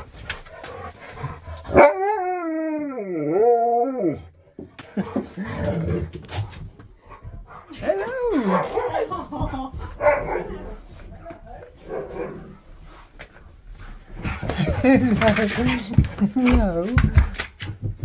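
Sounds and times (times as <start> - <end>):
dogs howling and talking: 1.2 - 4.4, 7.6 - 12.6
dog barks: 1.7 - 2.1, 10.0 - 10.8, 11.8 - 12.6.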